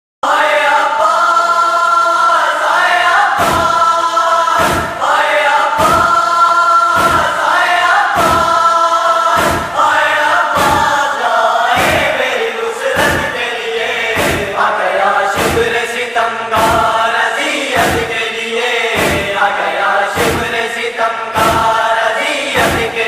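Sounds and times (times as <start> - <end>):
heavy chest-beating thumps: 3.4 - 5.1, 5.8 - 6.3, 7.0 - 7.5, 8.1 - 8.7, 9.3 - 11.0, 11.7 - 12.2, 13.0 - 13.4, 14.1 - 14.7, 15.3 - 15.9, 16.5 - 17.0, 17.8 - 18.2, 18.9 - 19.4, 20.2 - 20.6, 21.4 - 21.8, 22.6 - 23.0.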